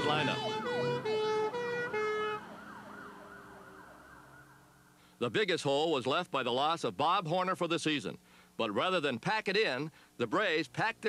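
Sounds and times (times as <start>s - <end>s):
steady horn-like tone: 0.0s - 2.6s
emergency siren sweeping: 0.0s - 5.0s.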